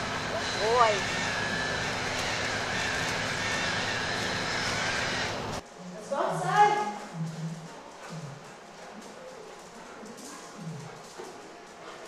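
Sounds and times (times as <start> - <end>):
dogs' paws on floor: 0.2 - 5.6, 6.3 - 12.0.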